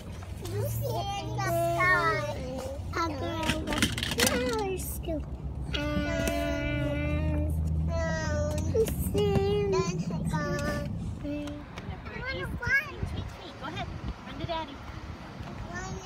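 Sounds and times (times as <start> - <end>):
car road noise rumble: 0.0 - 16.0
young child singing: 4.4 - 11.6.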